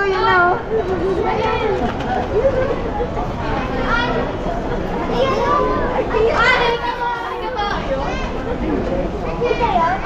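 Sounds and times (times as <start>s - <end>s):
hall background hum: 0.0s - 10.0s
high-pitched voices chattering: 0.0s - 10.0s.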